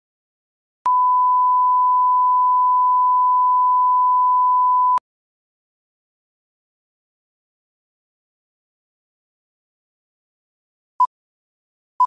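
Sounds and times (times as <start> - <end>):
steady pure beep tone: 0.9 - 5.0.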